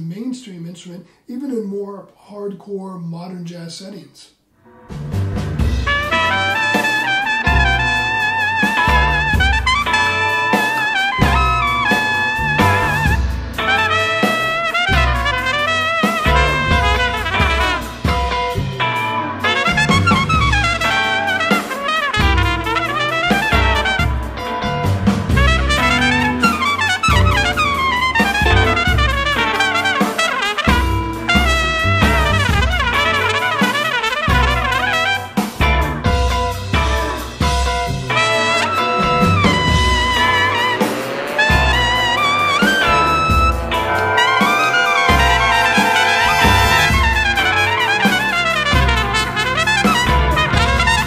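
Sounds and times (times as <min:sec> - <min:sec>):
jazz big band: 0:04.7 - 0:51.0
piccolo trumpet solo: 0:05.8 - 0:51.0.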